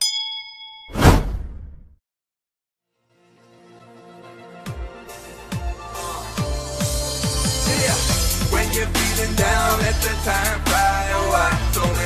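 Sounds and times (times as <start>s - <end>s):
notification bell ding: 0.0s - 1.0s
whoosh with low rumble: 1.0s - 2.0s.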